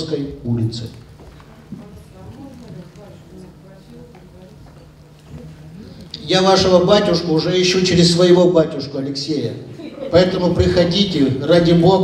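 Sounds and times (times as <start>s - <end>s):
distant people talking: 1.1s - 8.7s.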